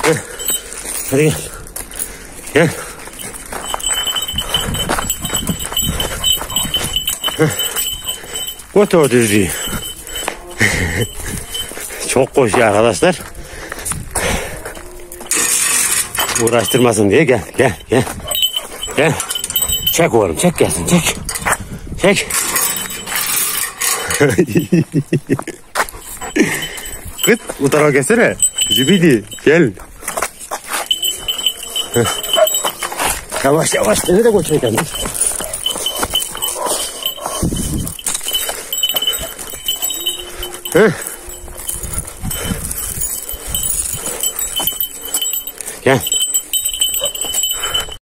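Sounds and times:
metal chain clinking: 0.0 - 13.3, 14.0 - 48.0
footsteps on brick paving: 0.2 - 15.4, 24.3 - 48.0
man laughing: 10.6 - 11.3, 23.8 - 27.5.

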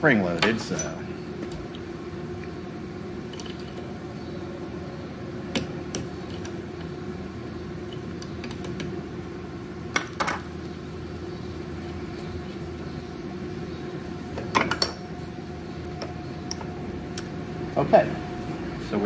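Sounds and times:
steady background hum: 0.0 - 19.0.

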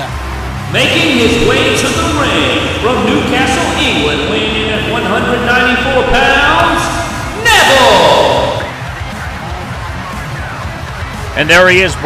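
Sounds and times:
entrance theme music with vocals: 0.6 - 9.3.

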